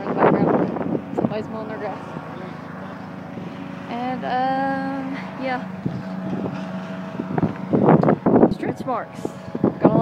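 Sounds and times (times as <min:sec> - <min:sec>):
lawn mower engine running: 0:00.0 - 0:10.0.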